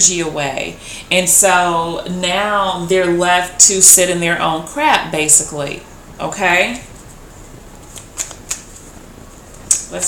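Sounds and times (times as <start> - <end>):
cards clicking while shuffled: 7.8 - 8.8.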